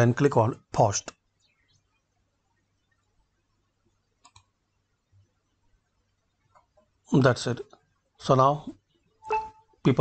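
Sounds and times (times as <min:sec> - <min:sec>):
computer mouse button clicking: 0:04.2 - 0:04.5.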